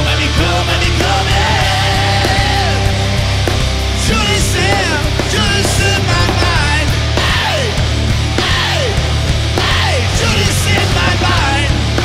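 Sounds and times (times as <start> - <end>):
bass and drums: 0.0 - 12.0
distorted electric guitars: 0.0 - 12.0.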